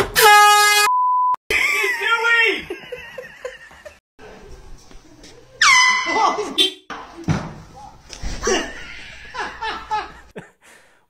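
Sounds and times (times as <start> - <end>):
loud air horn blast: 0.0 - 0.9
people laughing: 1.5 - 4.0, 8.4 - 10.6.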